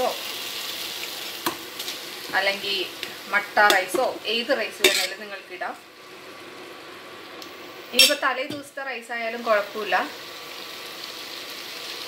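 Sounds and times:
masala sizzling in frying pan: 0:00.0 - 0:12.0.

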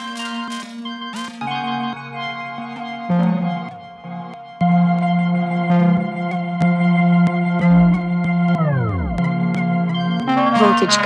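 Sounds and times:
sustained synth tones: 0:01.9 - 0:11.0.

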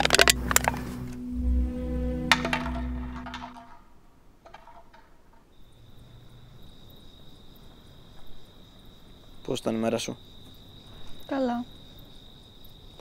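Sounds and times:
music: 0:00.0 - 0:03.8
cricket trilling: 0:05.5 - 0:13.0.

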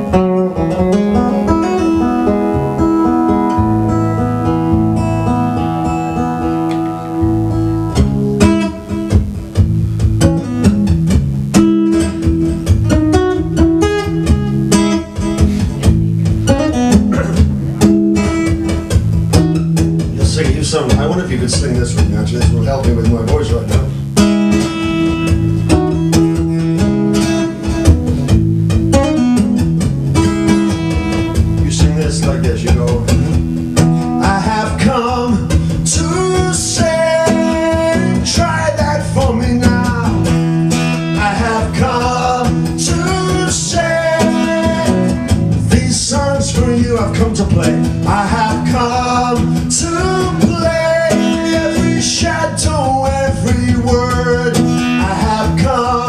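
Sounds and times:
strummed acoustic guitar: 0:00.0 - 0:56.0
man singing: 0:20.2 - 0:24.1, 0:31.2 - 0:33.3, 0:34.0 - 0:56.0.

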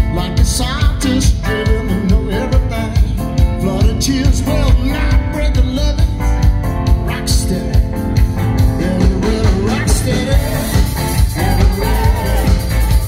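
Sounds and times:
lead vocal singing: 0:00.0 - 0:06.3, 0:07.0 - 0:13.0
drums: 0:00.0 - 0:13.0
electric guitar: 0:00.0 - 0:13.0
keyboards: 0:00.0 - 0:13.0.

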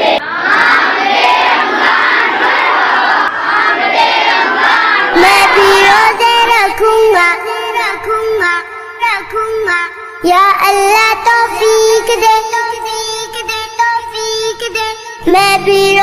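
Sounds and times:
children chanting together: 0:00.0 - 0:10.2
child singing: 0:00.0 - 0:16.0.

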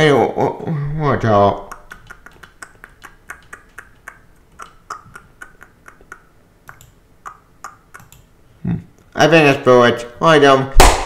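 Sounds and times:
computer mouse clicking: 0:05.9 - 0:07.0, 0:08.0 - 0:08.3.

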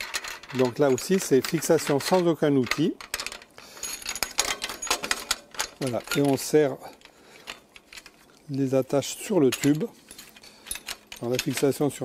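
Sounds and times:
metallic clicks and clinks: 0:00.0 - 0:08.6, 0:09.3 - 0:12.0.

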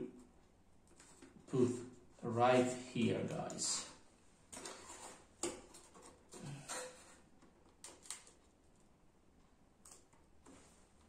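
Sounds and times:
faint taps and handling noises: 0:00.1 - 0:02.1.

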